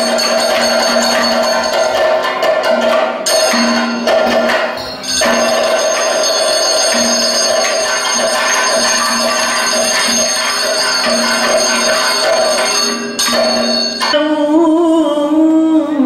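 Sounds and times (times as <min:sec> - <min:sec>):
drums: 0:00.0 - 0:14.3
ringing metal cymbals: 0:00.0 - 0:14.5
gong: 0:00.0 - 0:14.6.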